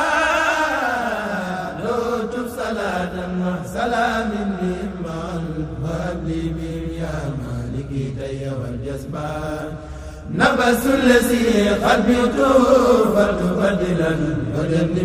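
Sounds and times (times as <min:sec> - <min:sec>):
person chanting devotional poem: 0:00.0 - 0:15.0.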